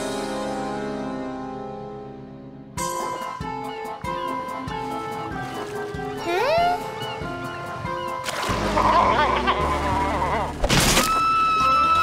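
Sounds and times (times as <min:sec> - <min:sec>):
light background music with beat: 0:02.7 - 0:10.2.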